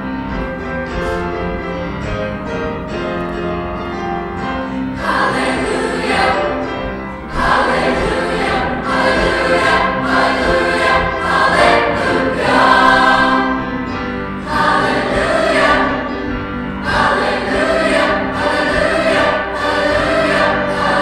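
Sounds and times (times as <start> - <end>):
children's choir singing: 0.0 - 21.0.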